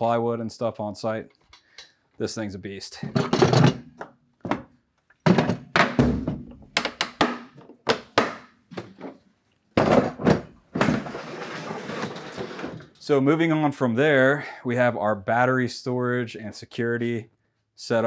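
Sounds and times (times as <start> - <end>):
plastic tool boxes knocking: 3.0 - 9.2, 9.8 - 12.3
box scraping slide: 10.8 - 13.0.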